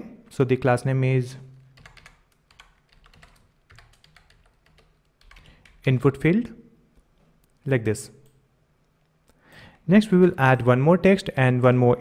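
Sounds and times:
computer keyboard typing: 0:01.7 - 0:05.8.

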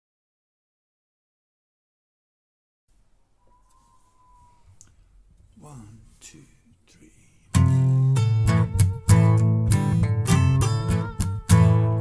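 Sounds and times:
faint clicks: 0:04.7 - 0:05.5
man counting in: 0:05.6 - 0:08.2
guitar: 0:07.5 - 0:12.0.

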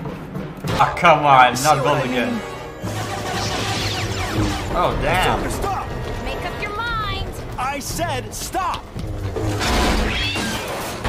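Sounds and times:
rumbling battle clatter: 0:04.4 - 0:11.0.

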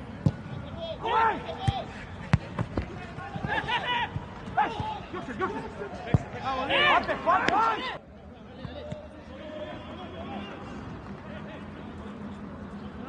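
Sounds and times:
players shouting: 0:00.4 - 0:08.0
football kick thuds: 0:01.6 - 0:05.0.

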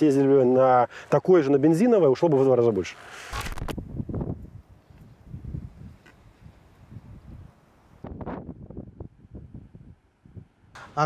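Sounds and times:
wind buffeting microphone: 0:03.3 - 0:11.0.

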